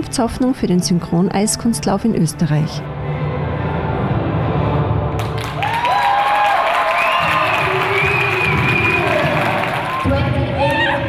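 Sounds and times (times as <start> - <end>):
skating program music: 0.0 - 11.0
audience applause and cheering: 5.1 - 11.0.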